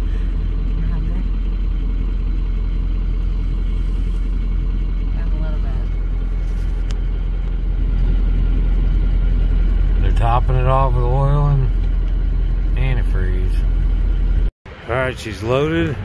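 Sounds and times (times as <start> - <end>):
truck engine droning: 0.0 - 16.0.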